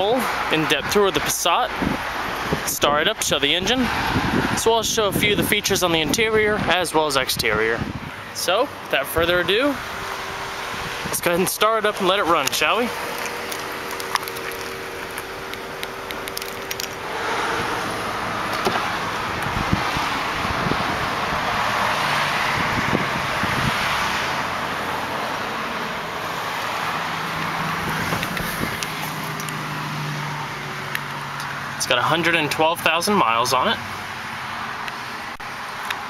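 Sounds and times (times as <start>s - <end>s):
car engine starting and idling: 7.7s - 36.0s
knocks and handling noise: 12.4s - 17.0s
keys jingling: 16.0s - 17.0s.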